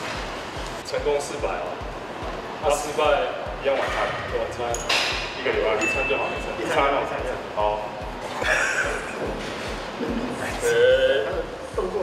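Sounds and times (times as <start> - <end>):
music with thumping beat: 0.0 - 12.0
men talking: 0.8 - 12.0.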